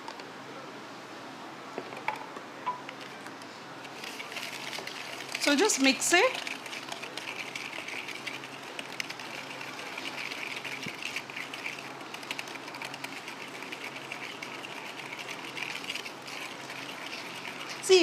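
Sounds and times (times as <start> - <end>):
whisk scraping a mixing bowl: 3.8 - 18.0.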